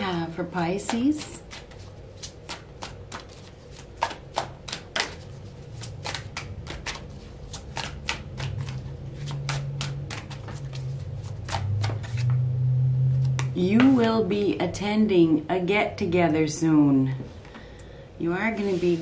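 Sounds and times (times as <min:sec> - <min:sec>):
cards shuffled by hand: 0:00.8 - 0:12.4.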